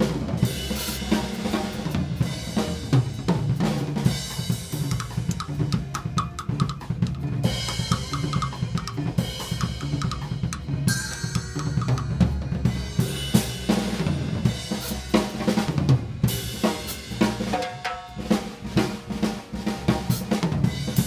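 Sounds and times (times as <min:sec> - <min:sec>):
bass drum: 0:00.0 - 0:21.0
snare and tom strokes: 0:00.0 - 0:21.0
cymbals and hi-hat ringing: 0:06.5 - 0:15.2.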